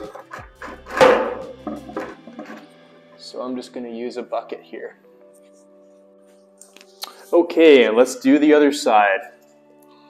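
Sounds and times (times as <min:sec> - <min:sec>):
metal part knocking on plastic bucket: 0:00.0 - 0:02.6.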